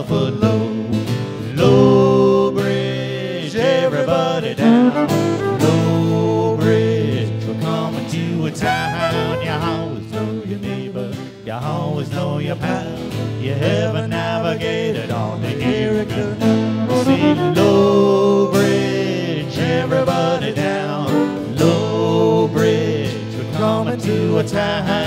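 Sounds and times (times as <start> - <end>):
acoustic guitar strumming: 0.0 - 25.0
fiddle playing: 4.4 - 6.9, 8.6 - 11.4, 15.4 - 19.2.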